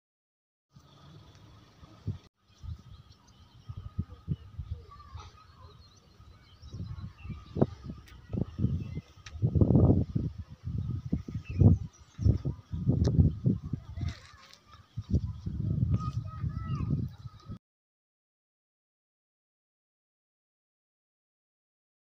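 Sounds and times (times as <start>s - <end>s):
wind buffeting microphone: 1.9s - 17.6s.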